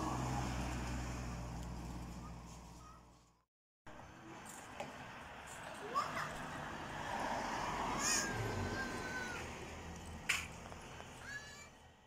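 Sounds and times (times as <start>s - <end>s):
car driving past: 0.0s - 2.4s, 6.5s - 11.0s.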